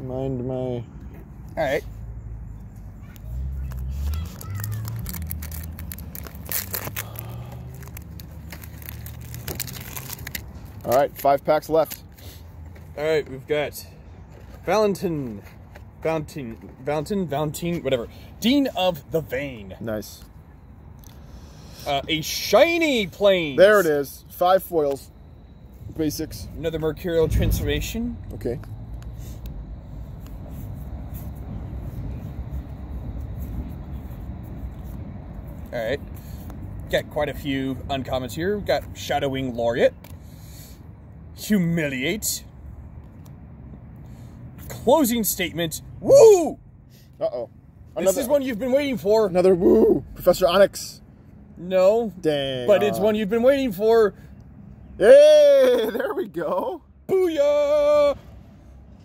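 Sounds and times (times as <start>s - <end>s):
low outdoor rumble: 0.0s - 59.0s
foil wrapper tearing and crinkling: 3.7s - 11.0s.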